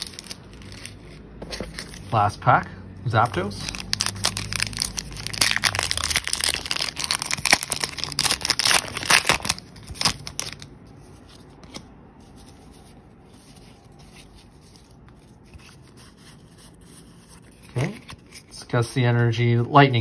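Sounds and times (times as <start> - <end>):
foil wrapper crinkling: 0.0 - 2.2, 3.4 - 10.7.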